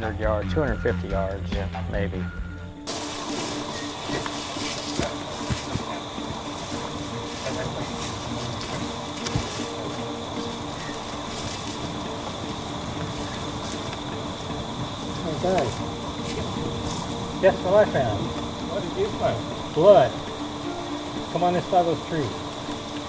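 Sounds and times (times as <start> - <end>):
faint steady tones: 0.0 - 23.0
steady hiss: 2.8 - 23.0
light crackles and clicks: 7.4 - 14.1, 15.0 - 17.1.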